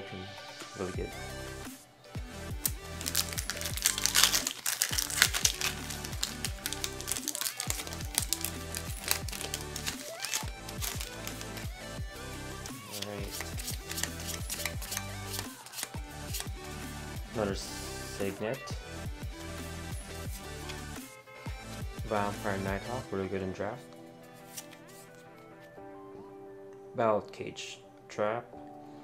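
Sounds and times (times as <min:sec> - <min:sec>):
foil wrapper crinkling: 0:02.9 - 0:11.7, 0:12.8 - 0:16.4
background music with bass beat: 0:07.7 - 0:23.0.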